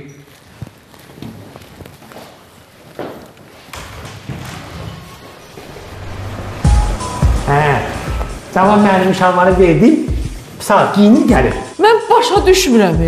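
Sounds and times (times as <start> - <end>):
footsteps on hard floor: 0.4 - 10.6.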